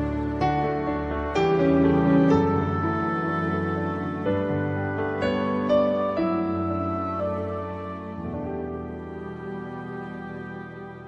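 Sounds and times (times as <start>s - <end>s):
slow soft piano music: 0.0s - 11.0s.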